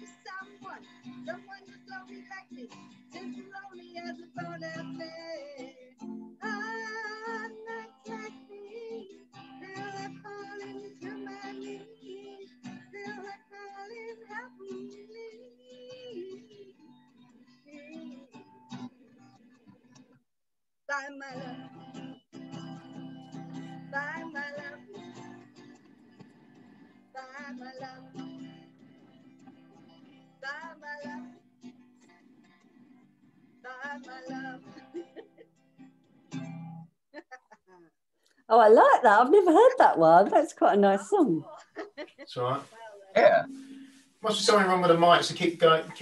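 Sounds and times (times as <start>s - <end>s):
woman singing: 0.0s - 20.0s, 20.9s - 25.6s, 27.2s - 29.0s, 30.4s - 31.4s, 33.7s - 35.4s, 38.6s - 43.7s
acoustic guitar: 0.0s - 20.2s, 20.9s - 37.0s, 38.3s - 46.0s.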